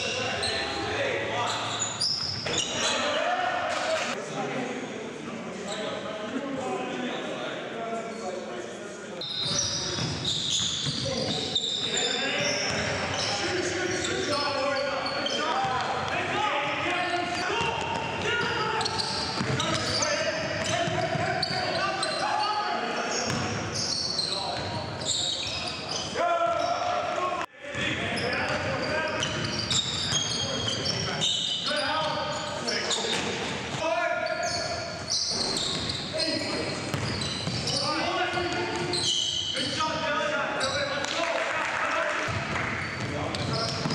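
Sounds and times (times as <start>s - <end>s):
basketball bouncing on gym floor: 19.2s - 19.9s, 36.9s - 37.7s.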